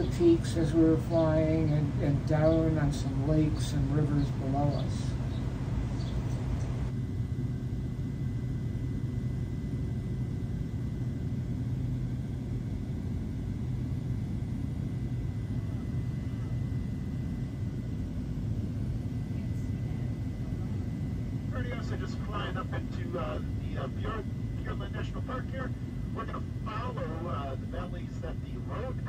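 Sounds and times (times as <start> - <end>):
small plane engine drone: 0.0 - 29.0.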